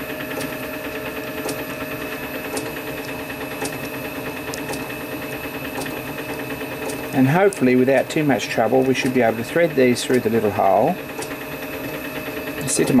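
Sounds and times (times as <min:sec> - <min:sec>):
steady mechanical hum: 0:00.0 - 0:13.0.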